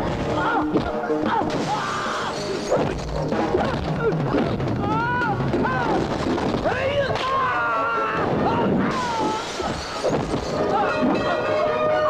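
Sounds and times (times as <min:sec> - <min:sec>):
action music score: 0:00.0 - 0:12.0
crashing and punching effects: 0:05.4 - 0:07.4, 0:08.3 - 0:10.7.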